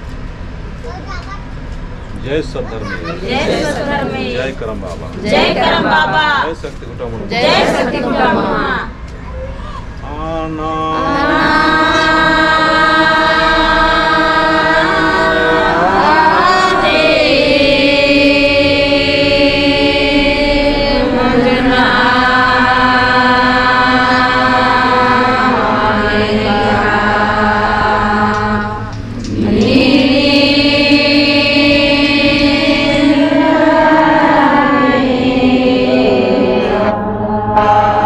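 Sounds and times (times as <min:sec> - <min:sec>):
crowd chanting a prayer: 0:02.3 - 0:09.0, 0:10.1 - 0:38.0.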